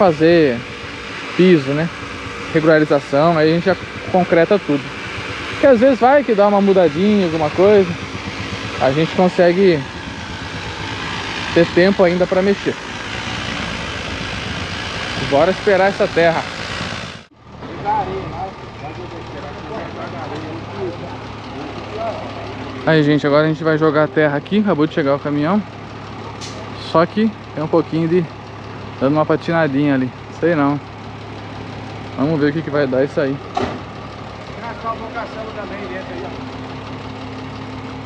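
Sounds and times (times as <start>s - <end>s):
diesel truck engine running: 0.0s - 38.0s.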